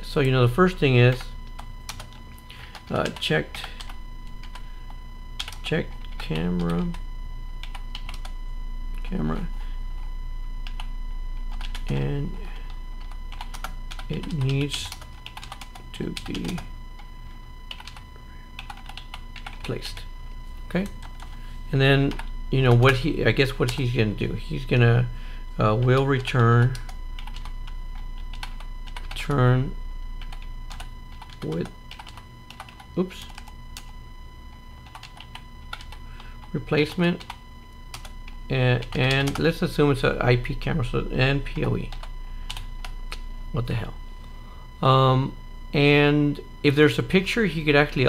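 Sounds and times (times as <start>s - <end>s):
computer keyboard typing: 1.0s - 4.7s, 5.4s - 7.0s, 7.6s - 8.3s, 10.6s - 10.9s, 11.5s - 12.0s, 12.6s - 16.7s, 17.7s - 18.0s, 18.6s - 20.1s, 20.8s - 21.4s, 22.1s - 23.0s, 25.7s - 29.3s, 30.2s - 33.9s, 34.8s - 39.5s, 41.9s - 43.2s.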